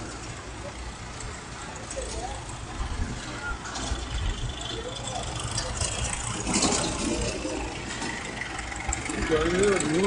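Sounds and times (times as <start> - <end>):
distant lorry and excavator engines: 0.0 - 10.0
voices: 0.0 - 10.0.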